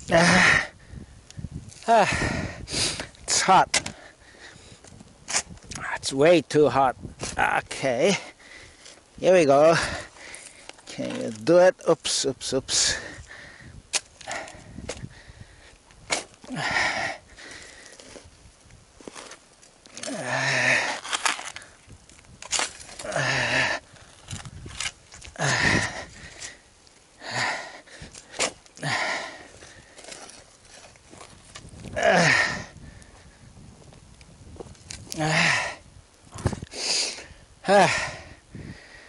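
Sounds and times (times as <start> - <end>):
shovel digging into stony soil: 5.3 - 5.6, 16.1 - 16.4, 20.9 - 21.6, 28.2 - 28.7.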